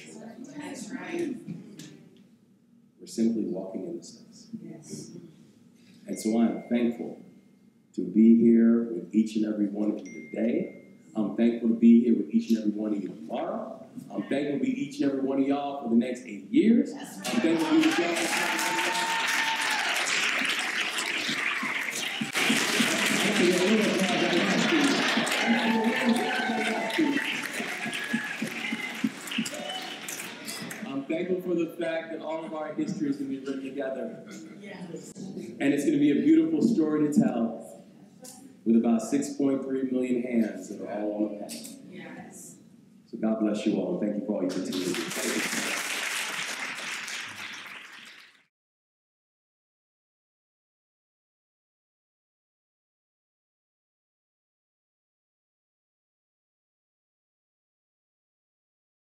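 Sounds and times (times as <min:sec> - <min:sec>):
man's voice: 0:11.2 - 0:19.0
audience applauding: 0:17.2 - 0:31.1, 0:44.5 - 0:48.5.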